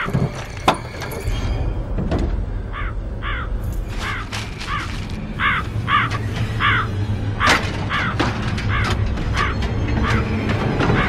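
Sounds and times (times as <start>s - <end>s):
steady low rumble: 1.3s - 10.8s
crows cawing: 2.7s - 11.0s.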